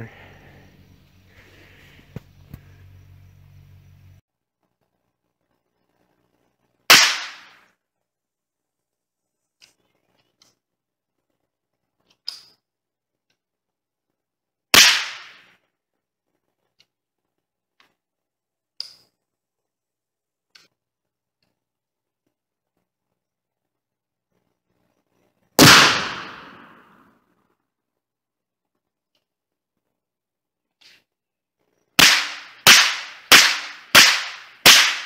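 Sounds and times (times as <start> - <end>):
loud gunshots ringing: 6.9 - 7.6, 14.8 - 15.4, 25.6 - 27.0, 32.0 - 35.0
faint sharp cracks: 6.9 - 7.8, 14.8 - 15.7, 30.7 - 35.0.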